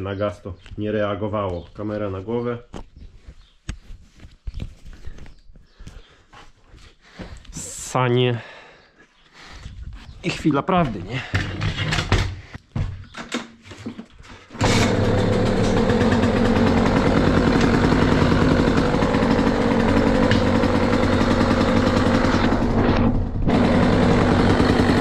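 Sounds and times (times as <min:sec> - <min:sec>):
dirt bike engine running: 0:14.6 - 0:25.0.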